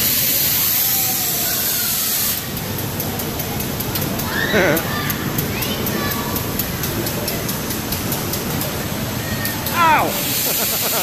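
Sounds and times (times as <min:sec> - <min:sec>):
air blaster hissing: 0:00.0 - 0:02.5, 0:09.7 - 0:11.0.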